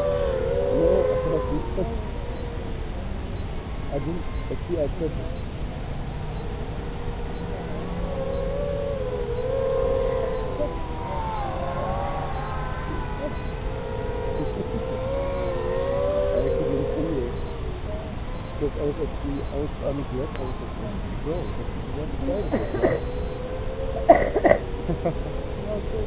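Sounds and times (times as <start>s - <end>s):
low rumble: 0.0s - 24.0s
drone motors whining: 0.0s - 26.0s.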